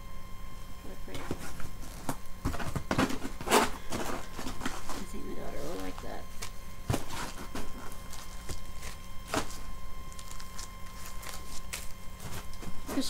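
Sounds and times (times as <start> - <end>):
plastic packaging crackling: 1.2 - 13.0.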